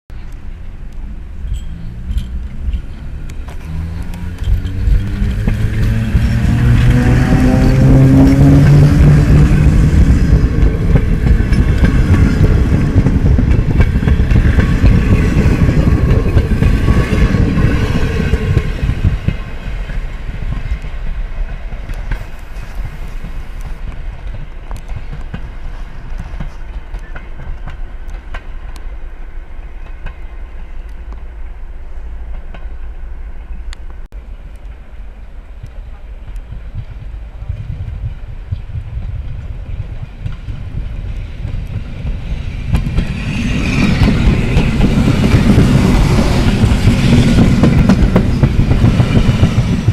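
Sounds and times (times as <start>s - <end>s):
electric locomotive motor hum: 0.2s - 49.9s
train wheels clicking over rail joints: 0.3s - 29.0s, 32.2s - 49.9s.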